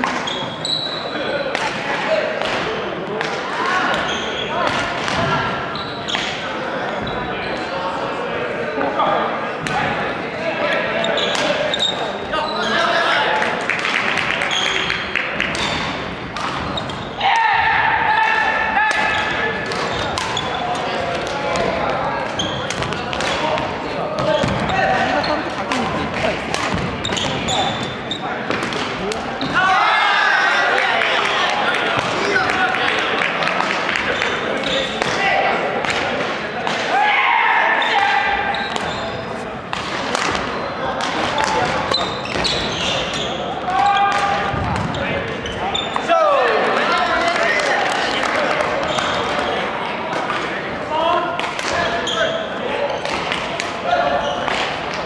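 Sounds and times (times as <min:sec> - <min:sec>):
rackets hitting shuttlecock: 0:02.4 - 0:05.4, 0:11.3 - 0:11.6, 0:13.7 - 0:17.5, 0:18.3 - 0:21.8, 0:22.4 - 0:29.3, 0:34.9 - 0:35.2, 0:39.7 - 0:42.6, 0:51.4 - 0:52.0, 0:53.0 - 0:53.8.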